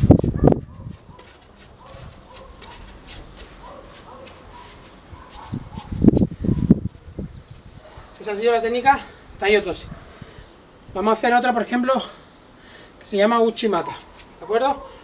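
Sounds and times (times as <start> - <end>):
footsteps on tiled floor: 0.0 - 8.2.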